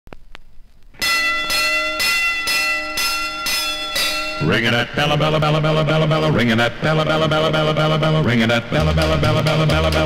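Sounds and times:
record surface crackle: 0.1s - 1.0s
bell ringing: 1.0s - 5.7s.

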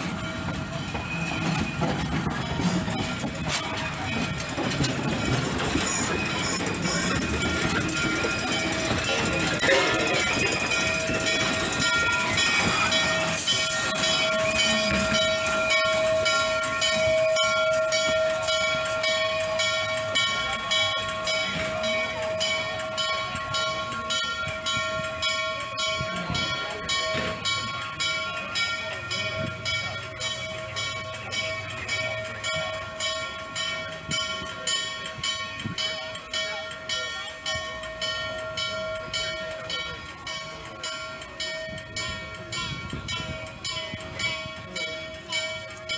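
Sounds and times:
steam locomotive exhaust beats: 0.0s - 45.9s.

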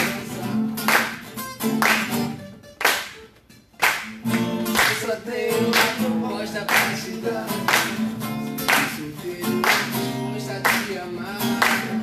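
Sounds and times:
acoustic guitars strummed: 0.0s - 12.0s
hand claps: 0.0s - 12.0s
person singing: 4.7s - 8.0s, 8.6s - 12.0s.

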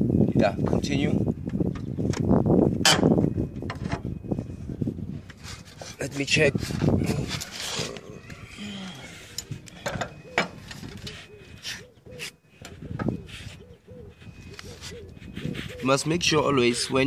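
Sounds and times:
faint voices: 6.5s - 11.8s.

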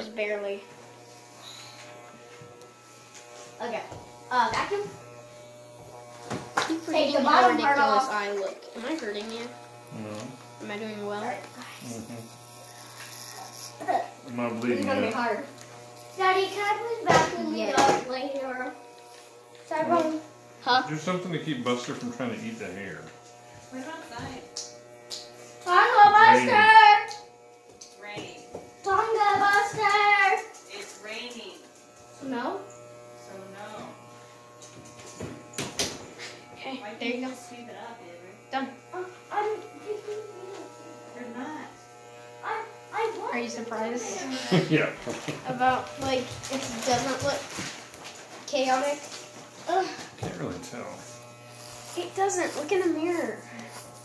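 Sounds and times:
electric hair clippers buzzing: 0.0s - 54.0s.

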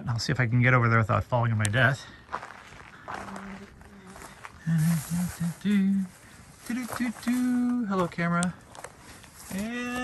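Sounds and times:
footsteps on rock: 2.1s - 4.6s, 6.2s - 10.0s
man humming or grunting: 4.6s - 5.6s.

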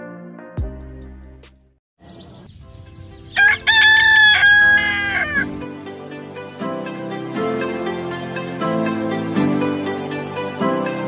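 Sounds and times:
plucked background music: 0.0s - 1.8s, 2.6s - 11.0s
rooster crowing: 3.3s - 5.6s.

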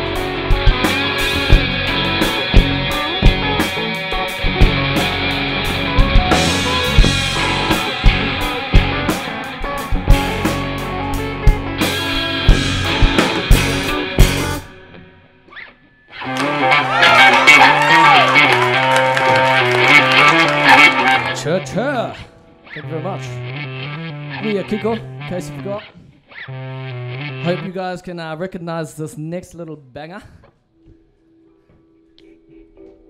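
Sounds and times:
live rock band playing: 0.0s - 27.6s
electric guitar with bent notes: 0.0s - 27.8s.

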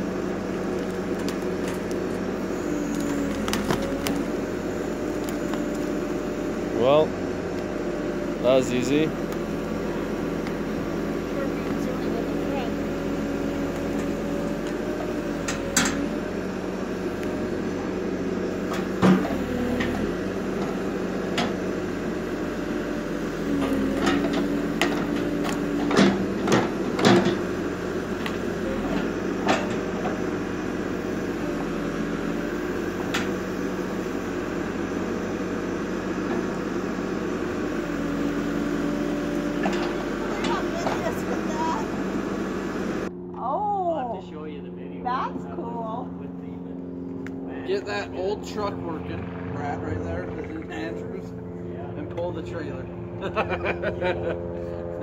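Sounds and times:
diesel engine running: 0.0s - 55.0s.

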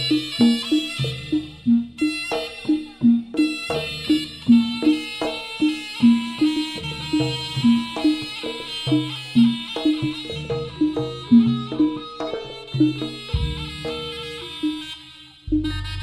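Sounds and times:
hand drum strokes: 0.0s - 14.9s
reedy wind instrument melody: 0.0s - 16.0s.

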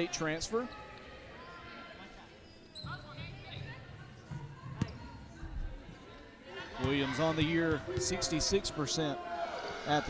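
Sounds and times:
crowd voices: 0.0s - 10.0s
basketball bouncing on court: 2.8s - 5.1s.

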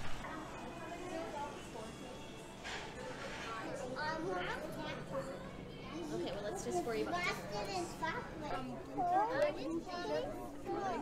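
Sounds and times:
young children chattering: 0.2s - 2.5s, 3.2s - 11.0s.

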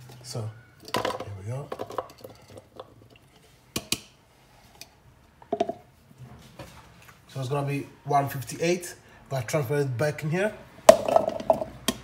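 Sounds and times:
containers on wooden worktop: 0.0s - 7.4s, 10.6s - 12.0s.

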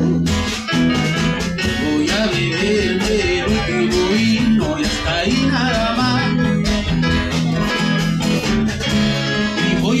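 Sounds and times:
bass guitar: 0.0s - 10.0s
drums: 0.0s - 10.0s
strummed guitar: 0.0s - 10.0s.

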